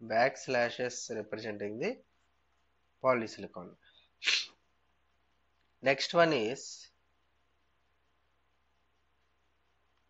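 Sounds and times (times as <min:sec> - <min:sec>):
person speaking: 0:00.0 - 0:02.1, 0:02.8 - 0:10.0.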